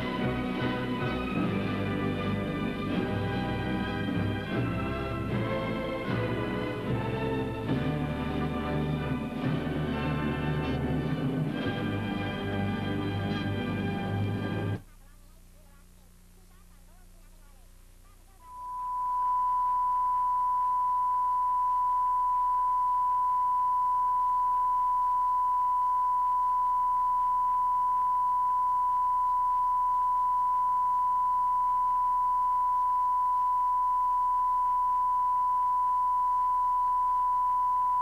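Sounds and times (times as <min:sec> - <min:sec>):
steady test tone beep: 0:18.4 - 0:38.0.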